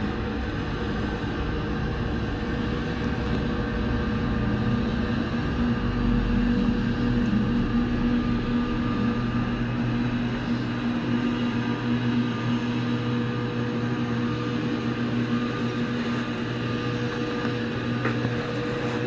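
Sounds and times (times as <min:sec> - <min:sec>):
gondola machinery hum: 0:00.0 - 0:19.0.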